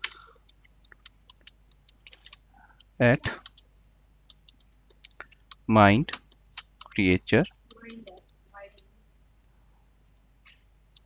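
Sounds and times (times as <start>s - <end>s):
keyboard key clicks: 4.3s - 7.0s.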